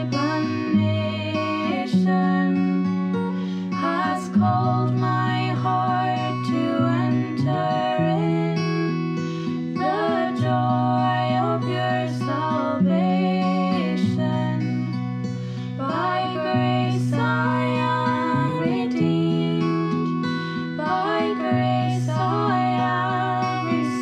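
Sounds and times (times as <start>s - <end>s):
strummed acoustic guitar: 0.0s - 24.0s
hymn singing: 9.7s - 15.0s, 15.7s - 24.0s.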